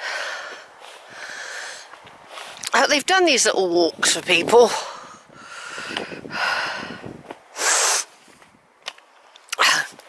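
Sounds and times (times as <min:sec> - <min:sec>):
person breathing: 0:00.0 - 0:02.6, 0:04.7 - 0:08.2.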